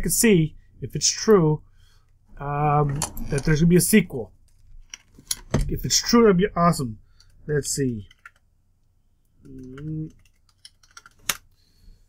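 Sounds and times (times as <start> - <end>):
typing on computer keyboard: 9.5 - 11.4.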